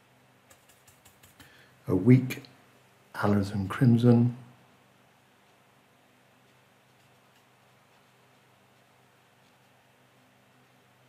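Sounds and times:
paintbrush clicks and taps: 0.5s - 1.6s, 6.4s - 9.7s
man speaking: 1.9s - 2.5s, 3.2s - 4.5s.

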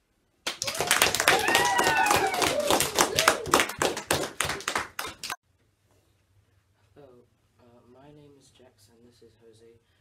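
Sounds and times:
group clapping: 0.4s - 5.4s.

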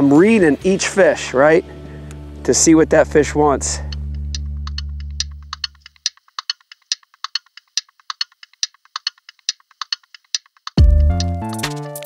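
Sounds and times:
quick irregular clicks: 3.9s - 11.7s.

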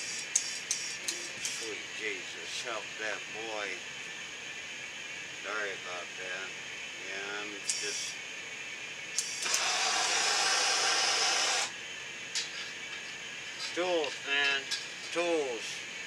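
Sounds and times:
amplifier buzz and hiss: 5.4s - 8.2s, 9.1s - 11.8s.

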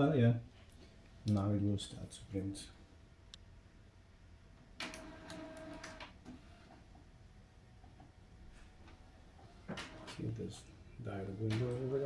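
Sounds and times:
printer feed motor whirring: 4.8s - 7.0s, 9.3s - 10.4s, 11.1s - 12.0s.

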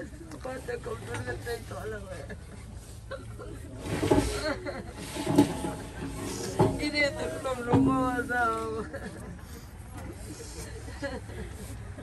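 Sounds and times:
faint scattered voices: 5.5s - 12.0s.

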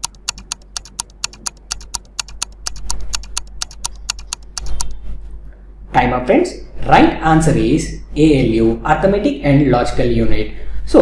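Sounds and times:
timer ticking: 0.0s - 4.9s.

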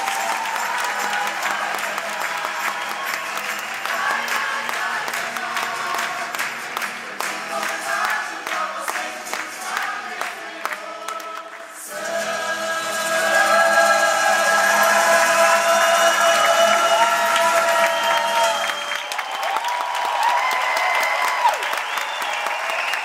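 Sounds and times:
acoustic guitars: 0.0s - 18.9s
audience clapping: 0.0s - 23.0s
group singing: 0.2s - 18.6s.

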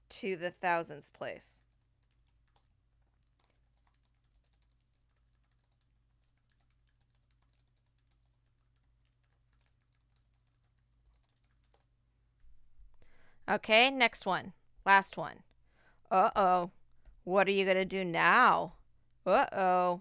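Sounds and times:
keyboard typing clicks: 1.6s - 11.9s.

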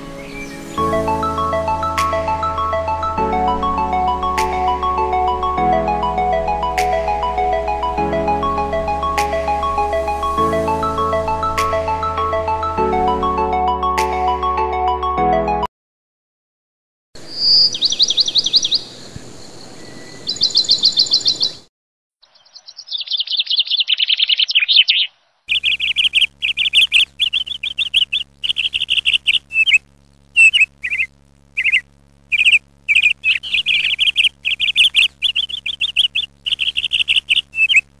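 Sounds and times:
songbird chirping trills: 0.0s - 13.2s, 17.2s - 38.0s
faint steady hum: 25.4s - 38.0s.

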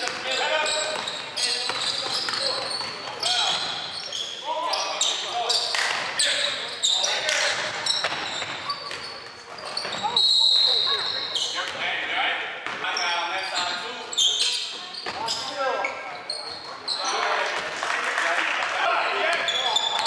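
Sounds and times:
sneakers squeaking on court: 0.0s - 17.5s, 19.3s - 20.0s.

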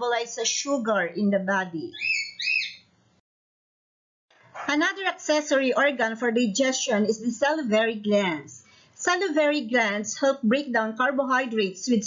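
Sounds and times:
bird chirping: 1.9s - 3.0s.

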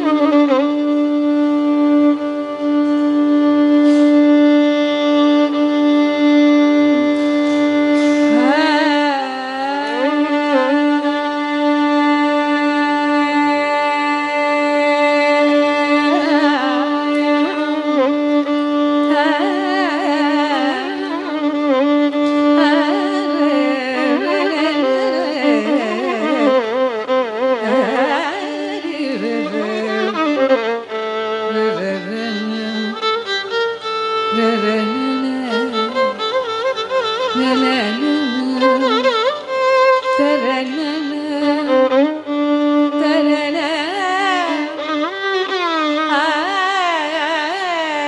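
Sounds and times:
tanpura drone: 0.0s - 48.0s
violin melody: 0.0s - 48.0s
person singing melodic phrases: 27.6s - 30.4s, 34.3s - 36.3s, 37.3s - 39.2s.

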